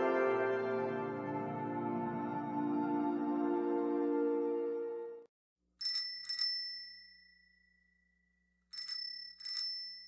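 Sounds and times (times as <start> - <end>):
small metal bell ringing: 5.8 - 10.0.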